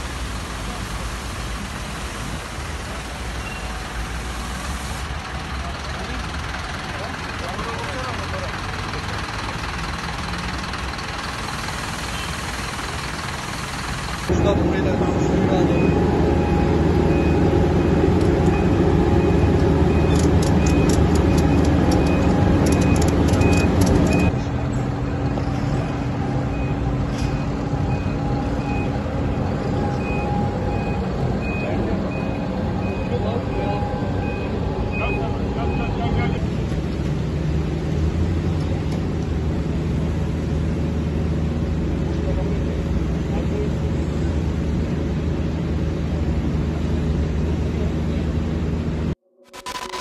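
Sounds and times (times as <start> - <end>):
heavy vehicle engines running: 0.0 - 49.2
electronic warning beep: 15.5 - 24.4, 25.0 - 29.0, 29.7 - 36.4.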